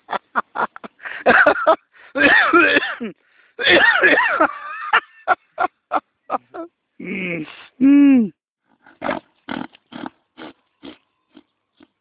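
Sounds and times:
donkey breathing hard: 8.6s - 11.0s.

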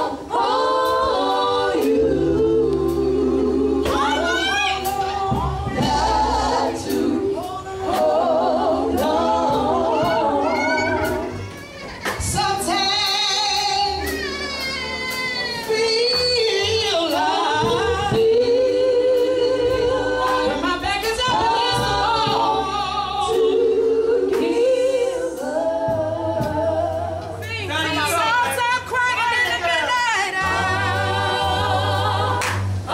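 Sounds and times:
women singing gospel together: 0.0s - 32.9s
electric bass and drums: 1.8s - 8.2s.

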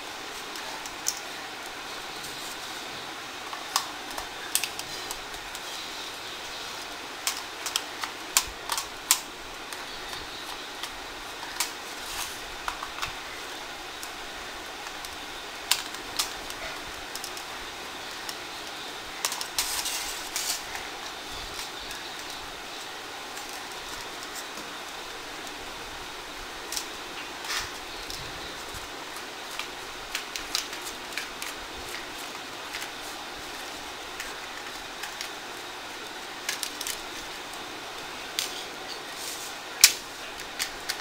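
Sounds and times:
steady background hiss: 0.0s - 41.0s.

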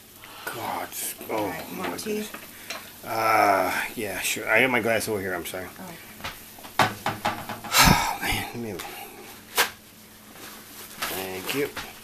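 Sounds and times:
hard object tapping: 6.7s - 8.0s.

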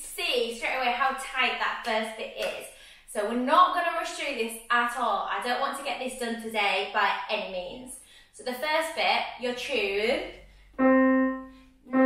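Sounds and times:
woman speaking: 0.0s - 10.4s.

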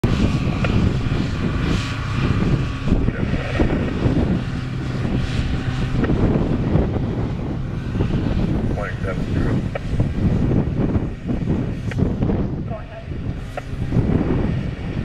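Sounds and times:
diesel engines droning: 0.0s - 15.0s.

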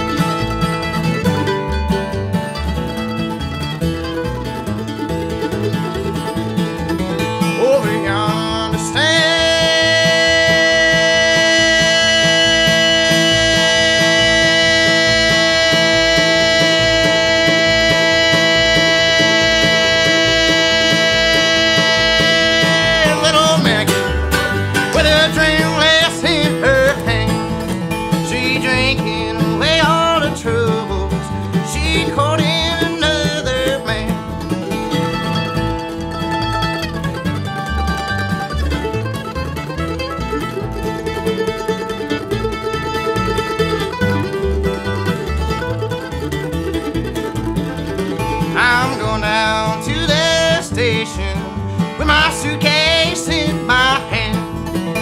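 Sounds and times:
acoustic guitar: 0.0s - 55.0s
mandolin: 0.0s - 55.0s
upright bass: 0.0s - 55.0s
man singing lead vocal: 7.5s - 24.2s, 24.8s - 34.3s, 48.4s - 55.0s.

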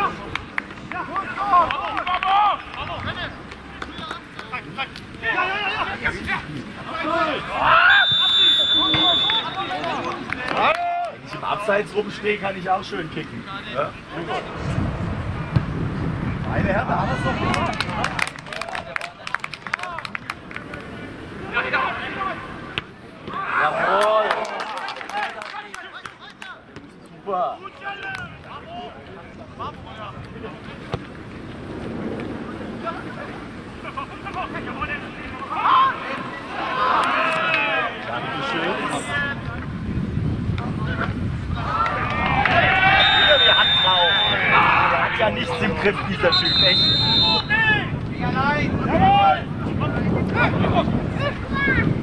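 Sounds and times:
players shouting: 0.0s - 14.6s, 17.0s - 31.0s, 32.5s - 39.7s, 41.6s - 52.0s
referee's whistle long blast: 7.9s - 9.7s, 42.9s - 44.5s, 46.3s - 47.6s.

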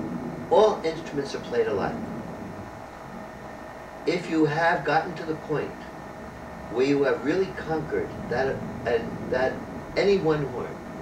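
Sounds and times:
background hiss and room noise: 0.0s - 11.0s
man speaking: 0.5s - 2.0s, 4.1s - 5.9s, 6.7s - 10.8s.

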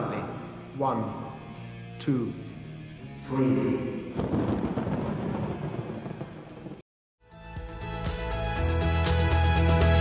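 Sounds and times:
thunder rumbling: 3.8s - 6.8s.

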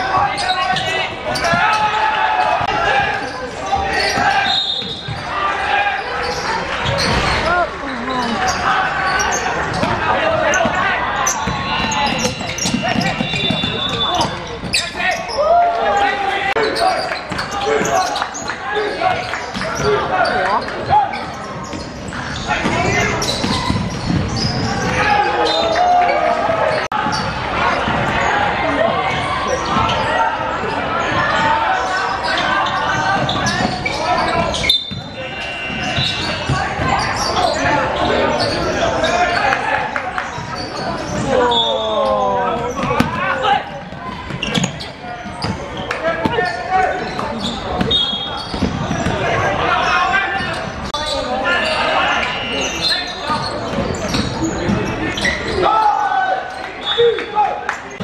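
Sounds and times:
players and spectators calling out: 0.0s - 58.0s
basketball bouncing on gym floor: 11.4s - 14.7s.

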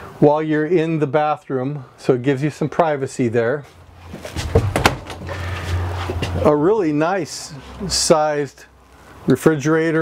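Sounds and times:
low steady hum: 2.9s - 9.2s
door pushed shut: 4.3s - 5.4s.

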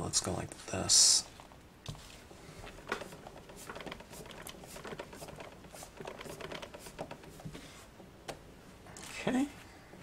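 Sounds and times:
rubber stamp clicks and scrapes: 2.7s - 7.6s.

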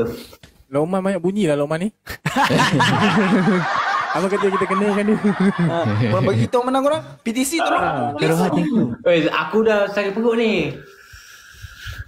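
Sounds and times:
young men laughing: 2.1s - 9.0s.

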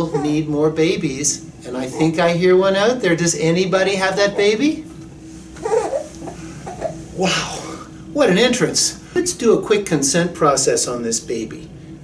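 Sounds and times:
baby vocalising: 0.0s - 0.5s, 5.6s - 7.0s
faint steady hum: 0.0s - 12.0s.

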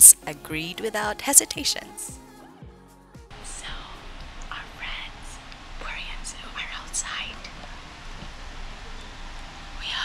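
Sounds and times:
person whispering: 3.4s - 7.5s.

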